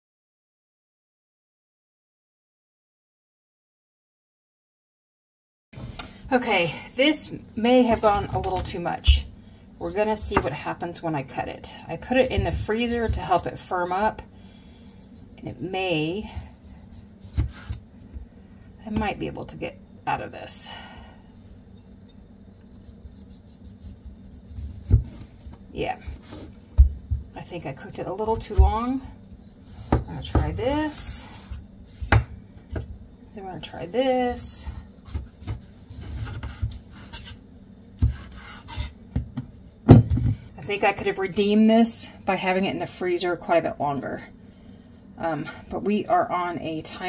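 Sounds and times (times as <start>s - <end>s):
knife scraping on cutting board: 16.3s - 17.8s, 21.7s - 25.6s, 34.7s - 37.4s, 38.0s - 39.0s.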